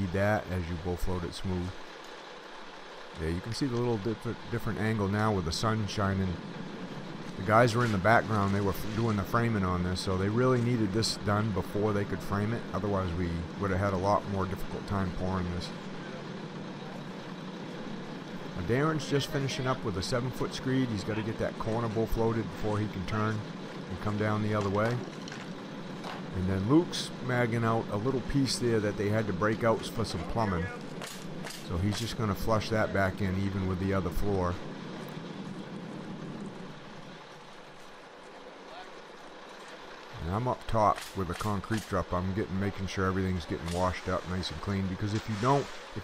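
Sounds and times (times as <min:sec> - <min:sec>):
truck engine idling: 0:00.0 - 0:46.0.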